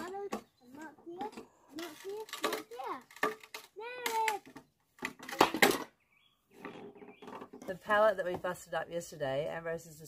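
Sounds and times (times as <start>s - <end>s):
wood cracking: 0.0s - 7.7s.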